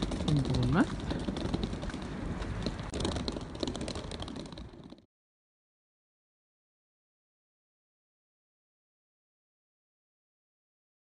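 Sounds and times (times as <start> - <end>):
small clicks and ticks: 0.0 - 5.1.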